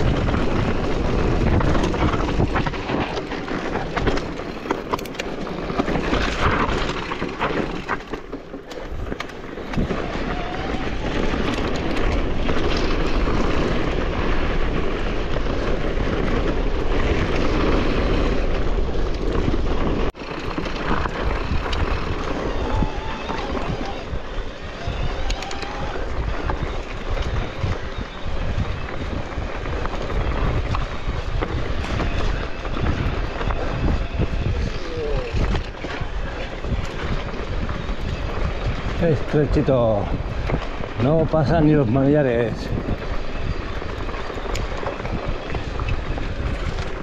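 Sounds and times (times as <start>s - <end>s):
bike tyres rattling on stones: 0.0s - 47.0s
wind rushing over microphone: 0.0s - 47.0s.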